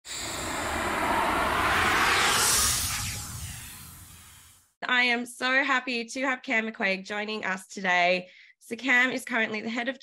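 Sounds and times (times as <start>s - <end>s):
rushing whoosh: 0.0s - 4.6s.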